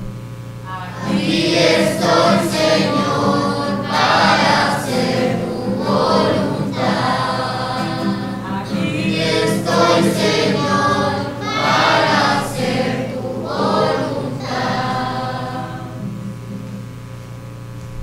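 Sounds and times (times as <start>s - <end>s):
steady electrical hum: 0.0s - 18.0s
voices singing a psalm refrain: 0.7s - 16.5s.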